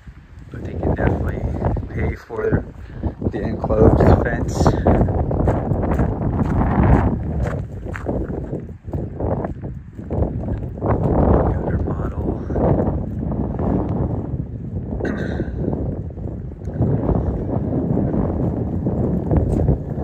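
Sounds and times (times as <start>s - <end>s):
footsteps on pavement: 0.0s - 20.0s
wind buffeting microphone: 0.0s - 20.0s.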